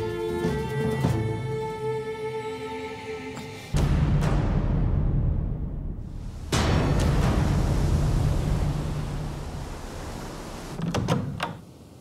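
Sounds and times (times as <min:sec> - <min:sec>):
low hum: 0:03.8 - 0:10.8
rushing wind and surf: 0:03.8 - 0:12.0.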